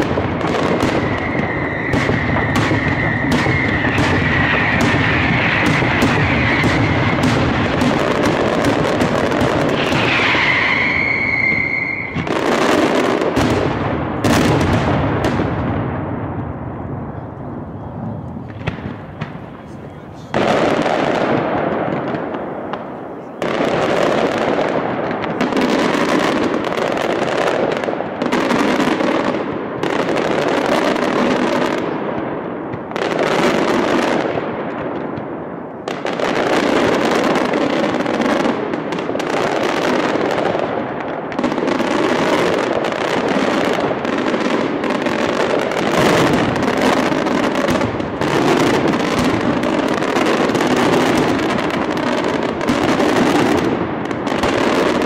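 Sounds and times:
fireworks bursting overhead: 0.0s - 55.0s.

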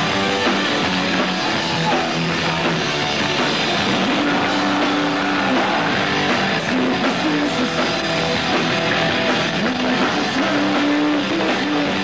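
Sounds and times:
distorted electric guitars: 0.0s - 12.0s
drums: 0.0s - 12.0s
punk rock band playing: 0.0s - 12.0s.

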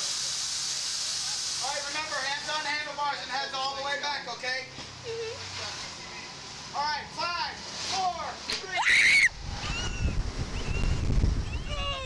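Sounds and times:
girl screaming: 8.7s - 10.2s, 11.5s - 12.0s
faint high squeals: 8.8s - 12.0s
wind buffeting microphone: 9.3s - 12.0s.

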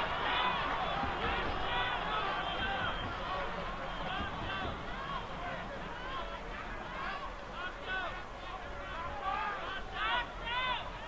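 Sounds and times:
high-pitched crowd shouts: 0.0s - 11.0s
murmur of crowd: 0.0s - 11.0s.

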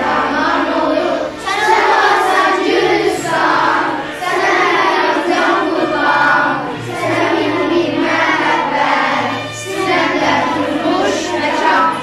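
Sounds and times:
accompanying music: 0.0s - 12.0s
children singing in chorus: 0.0s - 12.0s.

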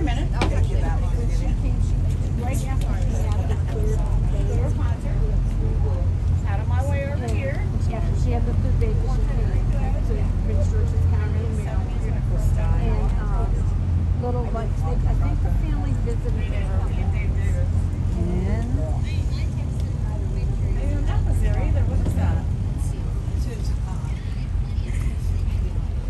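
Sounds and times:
boat engine rumble: 0.0s - 26.0s
passengers chattering: 0.0s - 26.0s.

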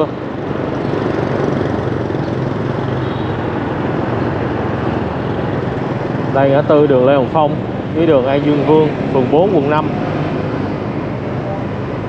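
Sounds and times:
motorbike engine drone: 0.0s - 12.0s
road noise: 0.0s - 12.0s.

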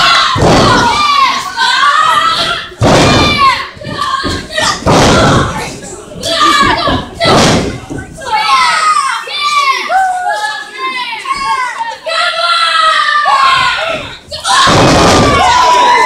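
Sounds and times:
crowd shouting: 0.0s - 5.6s, 6.2s - 16.0s.

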